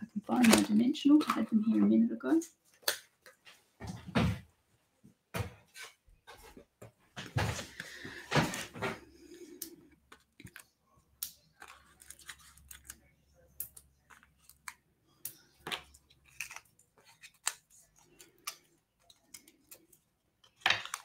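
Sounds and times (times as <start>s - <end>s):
faint clicks and rustles of handling: 5.0s - 21.0s.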